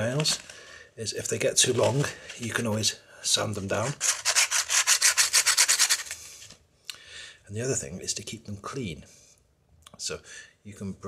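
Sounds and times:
sanding pad scratching on metal: 0:03.8 - 0:06.2.

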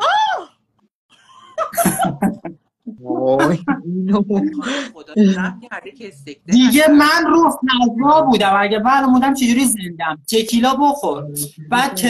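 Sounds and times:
person speaking: 0:01.8 - 0:12.0.

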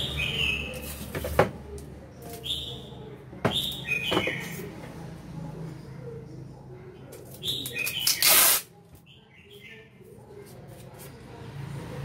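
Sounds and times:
recorded bird calls from speaker: 0:00.0 - 0:00.8, 0:02.4 - 0:04.6
packing tape pulled off roll: 0:08.0 - 0:08.7.

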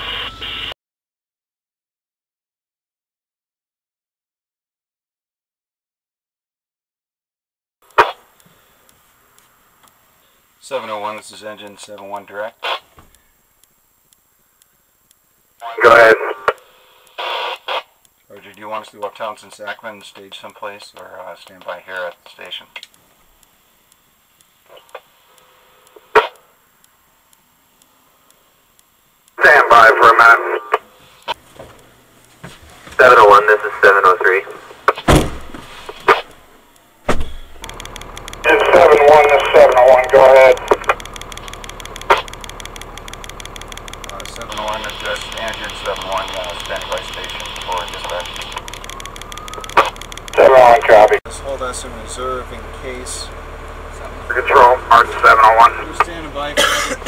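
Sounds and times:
radio clicks: 0:07.8 - 0:35.3, 0:35.9 - 0:36.9, 0:37.5 - 0:51.2, 0:53.6 - 0:56.2
tinny two-way radio chatter: 0:15.6 - 0:22.9, 0:29.4 - 0:31.4, 0:32.9 - 0:35.0, 0:38.4 - 0:41.4, 0:44.0 - 0:53.3, 0:53.9 - 0:57.0
fire engine motor humming: 0:31.4 - 0:57.0.

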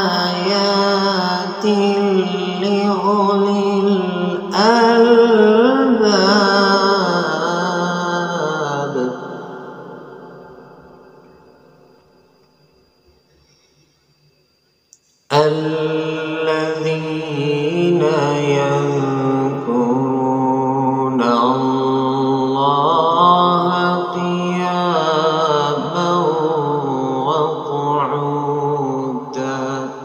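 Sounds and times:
man chanting melodically: 0:00.0 - 0:10.9, 0:15.3 - 0:30.0.

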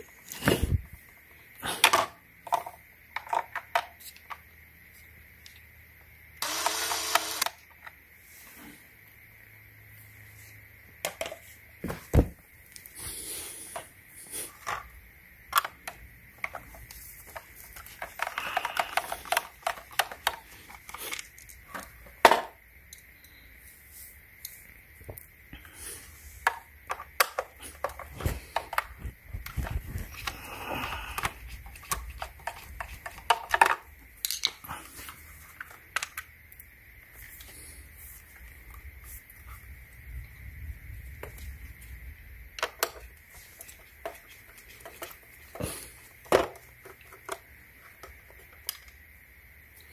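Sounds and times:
dull thump: 0:11.8 - 0:12.4
plastic clicks and scrapes: 0:15.6 - 0:21.9, 0:31.1 - 0:36.3.

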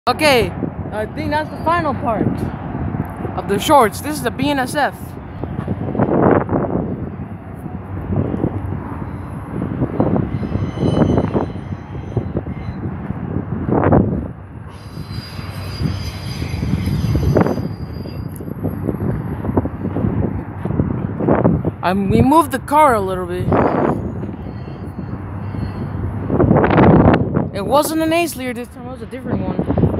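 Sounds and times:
freight train wheels rumbling: 0:00.1 - 0:29.9
faint high-pitched squealing: 0:09.0 - 0:12.9, 0:14.7 - 0:18.9, 0:23.4 - 0:26.2.

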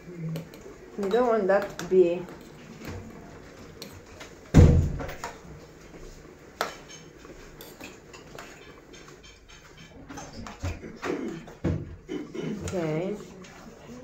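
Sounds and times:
fork tapping in metal saucepan: 0:00.4 - 0:02.5, 0:06.6 - 0:10.6.

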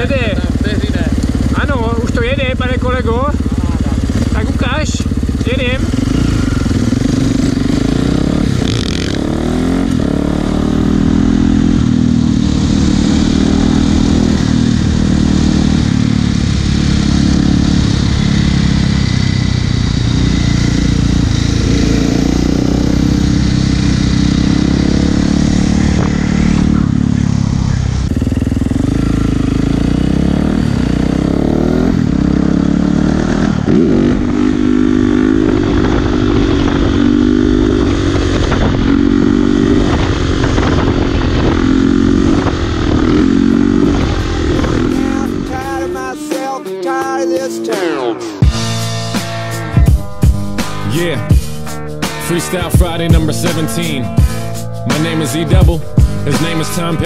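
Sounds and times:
motorcycle engine revving: 0:00.0 - 0:46.2, 0:48.2 - 0:57.0.

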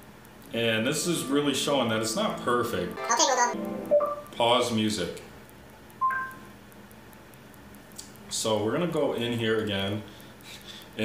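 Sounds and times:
smart speaker electronic chime: 0:00.8 - 0:04.2, 0:06.0 - 0:06.4.

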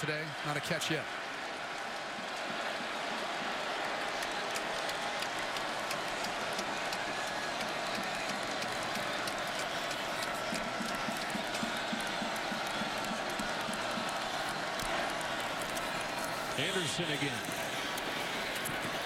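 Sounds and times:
people clapping: 0:00.0 - 0:19.0.

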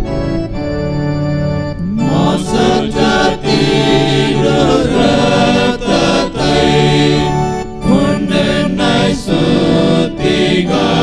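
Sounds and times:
electronic organ: 0:00.0 - 0:11.0
men's choir singing a hymn: 0:01.8 - 0:11.0.

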